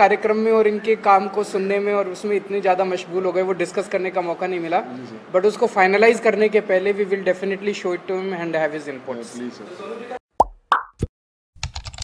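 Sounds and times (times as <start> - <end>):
synthetic plops: 10.4 - 11.1
keyboard typing clicks: 11.6 - 12.0.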